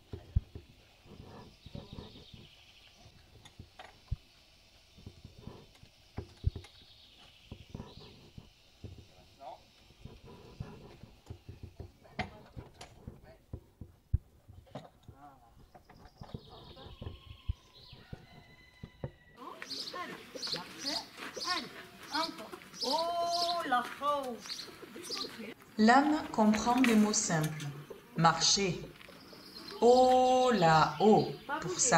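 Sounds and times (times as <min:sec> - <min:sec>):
small bird chirping: 0:00.1 - 0:12.7, 0:14.5 - 0:25.8, 0:26.5 - 0:31.9
plastic bucket knocking on wooden frame: 0:11.2 - 0:17.4.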